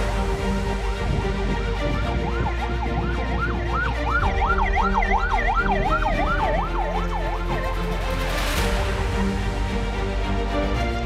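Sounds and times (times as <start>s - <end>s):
vehicle siren yelping: 2.0s - 7.7s.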